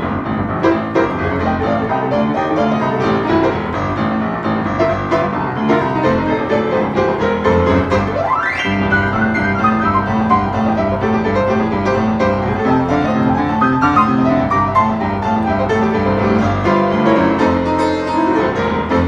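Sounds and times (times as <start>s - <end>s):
boogie-woogie piano: 0.0s - 19.0s
piano glissando: 0.0s - 19.0s.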